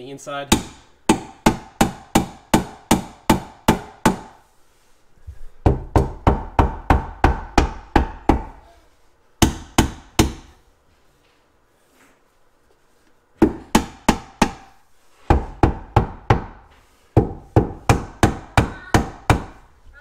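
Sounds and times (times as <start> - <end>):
rubber mallet knocking on wood: 0.5 - 4.4, 5.6 - 8.6, 9.4 - 10.6, 13.4 - 19.6.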